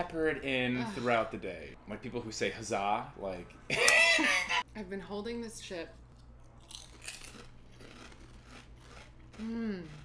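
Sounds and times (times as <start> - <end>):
crisps crunching: 6.6 - 9.4.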